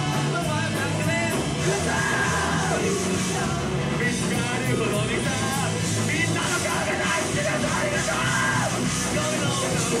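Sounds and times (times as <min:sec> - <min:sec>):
live rock band playing: 0:00.0 - 0:10.0
singer yelling and singing: 0:00.0 - 0:10.0.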